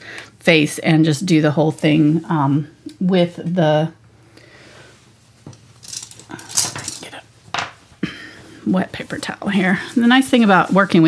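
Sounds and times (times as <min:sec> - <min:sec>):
paper towel rustling: 0:08.9 - 0:11.0.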